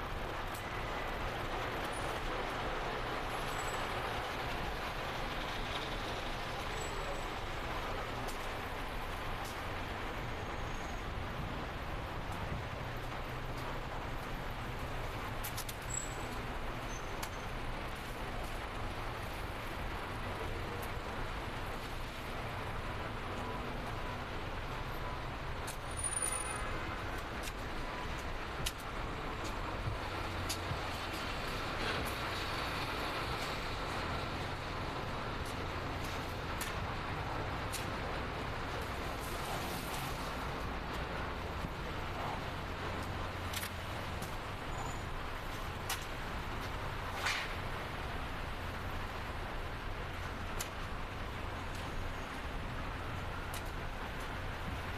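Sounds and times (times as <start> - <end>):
road noise: 0.0 - 54.9.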